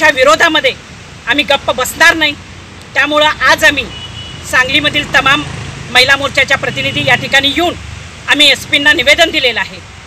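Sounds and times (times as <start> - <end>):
low rumble of traffic: 0.0 - 10.0.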